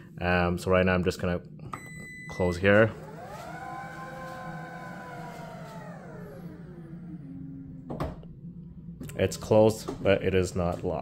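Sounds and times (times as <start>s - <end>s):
liftgate motor whining: 2.6s - 9.2s.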